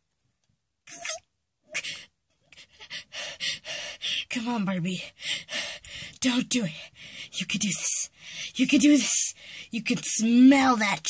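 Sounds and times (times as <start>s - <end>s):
breathy panting: 1.7s - 9.8s.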